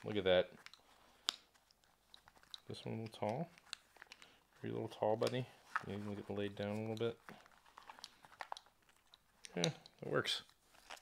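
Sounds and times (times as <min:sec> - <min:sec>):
leather pouch clicks and rustling: 0:00.6 - 0:04.2, 0:10.7 - 0:11.0.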